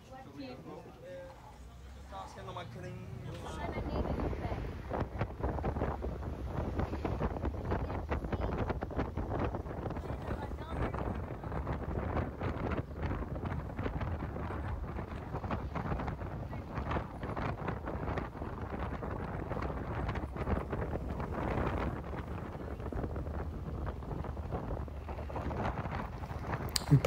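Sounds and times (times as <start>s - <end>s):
road and engine rumble: 0.0s - 27.0s
wind buffeting microphone: 3.4s - 27.0s.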